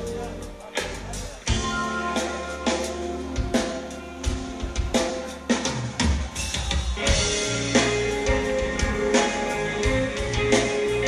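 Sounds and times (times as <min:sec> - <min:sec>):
electric guitar and bass: 0:00.0 - 0:05.6, 0:07.0 - 0:11.0
drum kit with cymbal strikes: 0:00.0 - 0:11.0.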